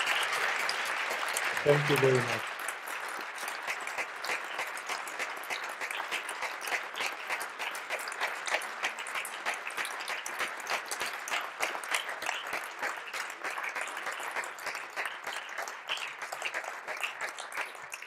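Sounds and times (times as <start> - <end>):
audience applauding: 0.0 - 18.0.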